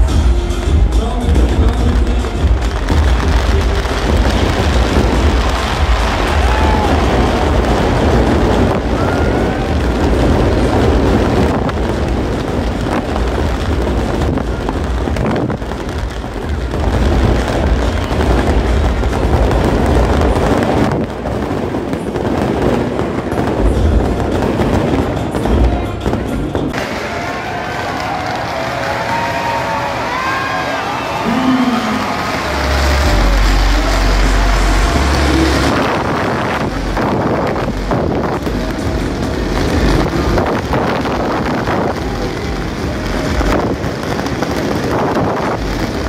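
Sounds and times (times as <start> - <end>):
music: 0.0 - 26.8, 31.3 - 46.0
fireworks crackling and banging: 0.0 - 46.0.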